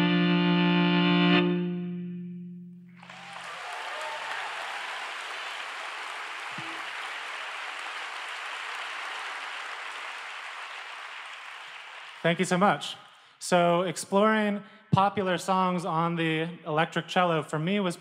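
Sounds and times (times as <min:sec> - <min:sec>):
electric cello note: 0:00.0 - 0:03.0
audience applause: 0:03.0 - 0:12.6.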